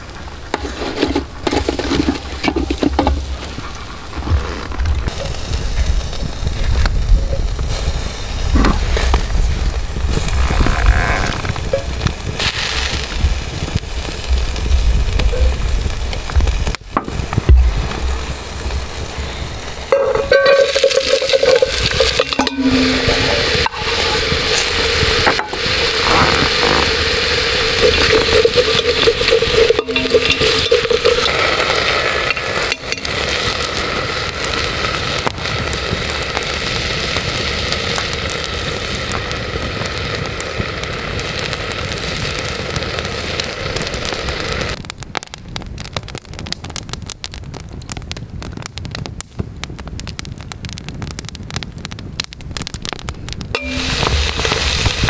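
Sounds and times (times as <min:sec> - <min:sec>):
onions sizzling in hot fat: 0:00.0 - 0:47.9, 0:51.0 - 0:55.0
wood fire crackling: 0:00.0 - 0:55.0
stirring and scraping in pot: 0:00.4 - 0:05.2, 0:19.9 - 0:33.7, 0:53.6 - 0:55.0.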